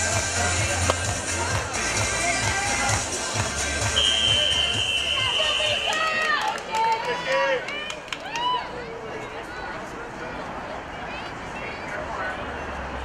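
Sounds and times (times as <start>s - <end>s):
referee's whistle long blast: 4.0s - 6.1s
spectators shouting and whooping: 4.0s - 9.4s.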